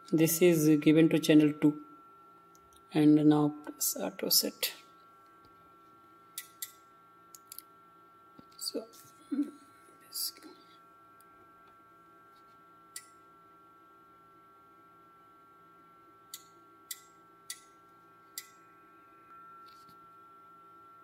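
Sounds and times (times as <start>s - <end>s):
sharp relay clicks: 6.4s - 7.6s, 16.3s - 17.7s, 18.4s - 18.6s
high-pitched electronic whine: 17.9s - 21.0s.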